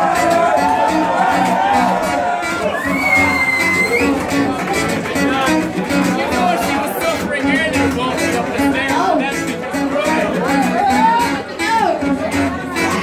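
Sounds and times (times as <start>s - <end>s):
crowd voices: 0.0s - 13.0s
strummed acoustic guitar: 0.0s - 13.0s.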